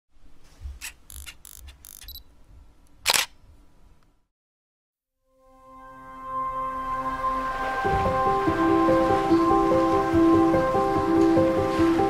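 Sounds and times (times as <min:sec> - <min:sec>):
camera shutter clicks: 0:00.8 - 0:02.2, 0:03.0 - 0:03.4.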